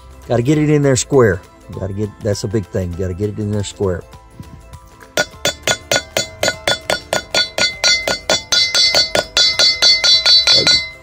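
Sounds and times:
hammer tapping metal drum: 5.2 - 11.0.

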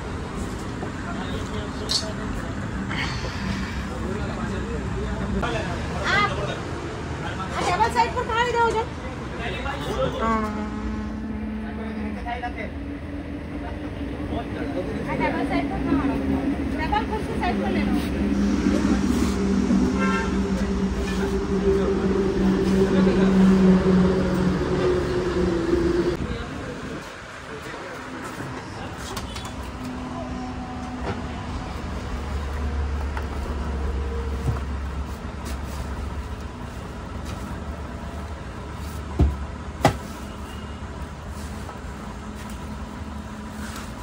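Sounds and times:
engine rumble: 0.0 - 44.0.

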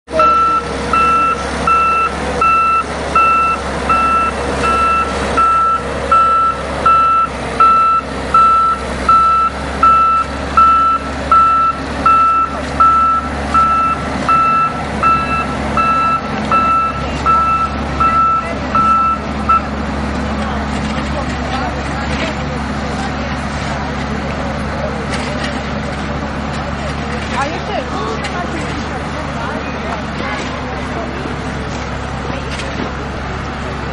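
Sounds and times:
diesel engine running: 0.0 - 33.9
reverse alarm beeping: 0.2 - 19.7.

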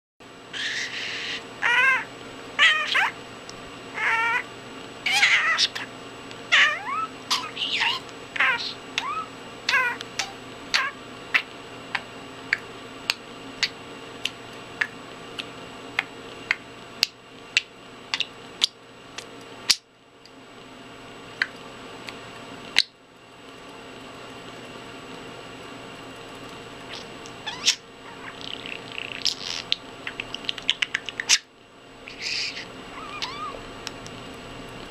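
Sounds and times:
budgerigar chirping and squawking: 0.5 - 3.2, 4.0 - 4.4, 5.1 - 5.9, 6.5 - 11.5, 26.9 - 31.5, 32.1 - 33.6
cat meowing: 1.6 - 3.1, 4.0 - 4.4, 6.5 - 10.0, 32.9 - 33.6.

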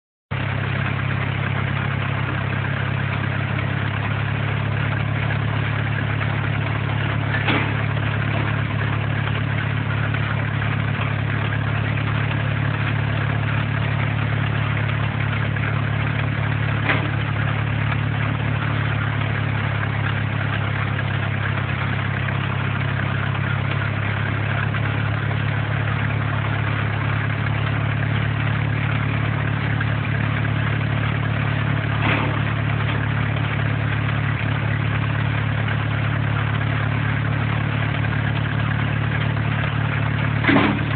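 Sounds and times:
tractor engine running steadily: 0.3 - 40.9.

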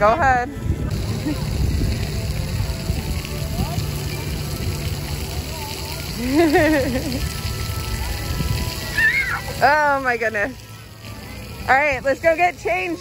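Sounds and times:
water spattering: 0.7 - 13.0.

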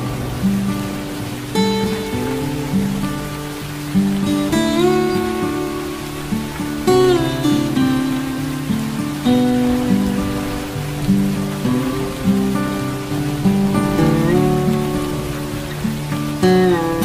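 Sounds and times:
plucked acoustic guitar music: 0.0 - 17.0
steady rain: 0.0 - 17.0.

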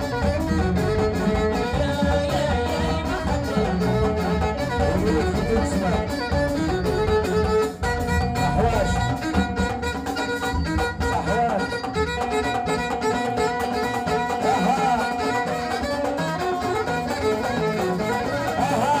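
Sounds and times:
frame drum and hand drum: 0.0 - 19.0
violin melody: 0.0 - 19.0.

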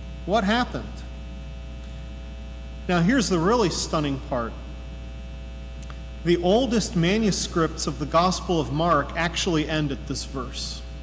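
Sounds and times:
electrical mains hum: 0.0 - 11.0
man's voice: 0.3 - 1.0, 2.9 - 4.6, 6.2 - 10.8.

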